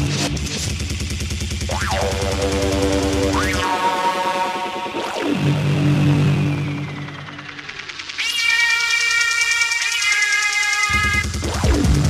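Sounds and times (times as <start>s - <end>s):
low synth drone: 0.0s - 12.0s
fast ticking pulse: 0.5s - 12.0s
high-pitched synth tone: 1.7s - 12.0s.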